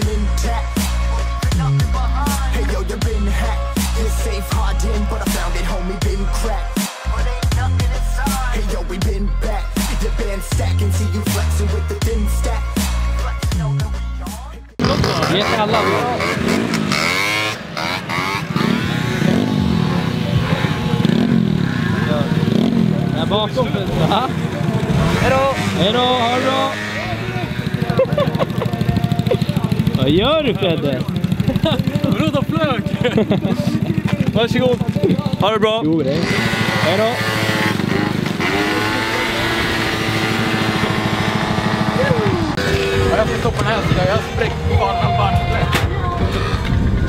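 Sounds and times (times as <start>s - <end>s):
moped engines revving: 0.0s - 47.0s.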